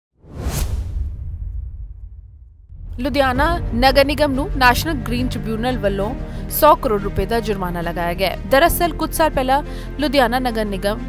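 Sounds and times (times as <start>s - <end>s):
whoosh sound effect: 0.2s - 3.3s.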